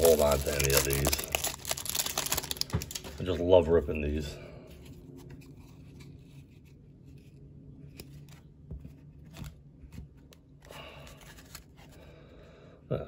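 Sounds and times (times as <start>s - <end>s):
paper rustle: 0.0s - 3.4s.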